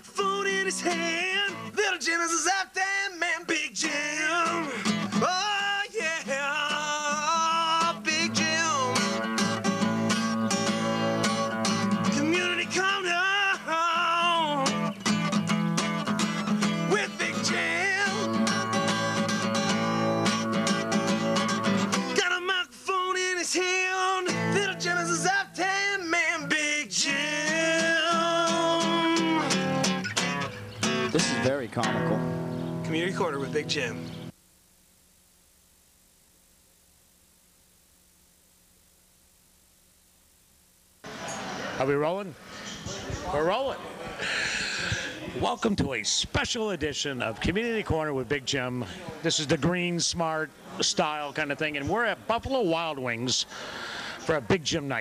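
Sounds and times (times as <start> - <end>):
person singing: 0.0 - 9.4, 11.9 - 14.9, 16.6 - 29.8
acoustic guitar: 0.0 - 34.4, 41.0 - 55.0.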